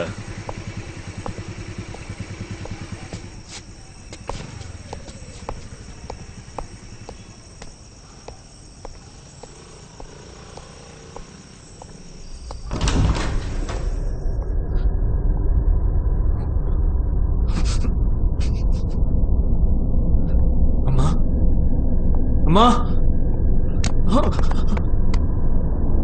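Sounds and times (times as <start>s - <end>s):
scooter engine running: 0.0s - 12.6s
footsteps on hard ground: 0.2s - 12.6s.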